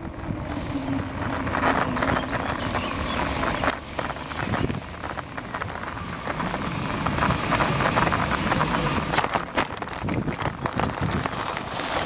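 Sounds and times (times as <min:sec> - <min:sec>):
bike rattles and clicks: 0:00.0 - 0:12.0
tyre rumble over road: 0:00.0 - 0:12.0
wind on microphone: 0:00.0 - 0:12.0.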